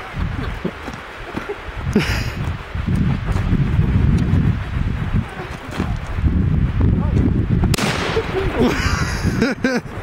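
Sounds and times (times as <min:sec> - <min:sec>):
wind rumble on microphone: 0:00.0 - 0:10.0
people laughing: 0:00.4 - 0:02.4, 0:08.0 - 0:10.0
shotgun shot: 0:07.7 - 0:08.4.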